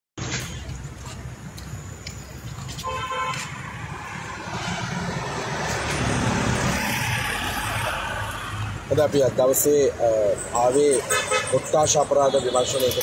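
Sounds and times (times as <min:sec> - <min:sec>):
passing traffic: 0:00.2 - 0:13.0
vehicle horn toot: 0:02.8 - 0:03.5, 0:12.2 - 0:13.0.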